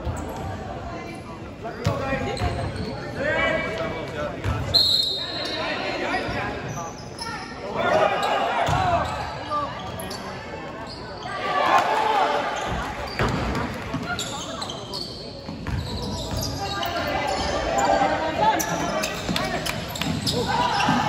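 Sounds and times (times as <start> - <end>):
voices calling out in gym: 0.0 - 21.0.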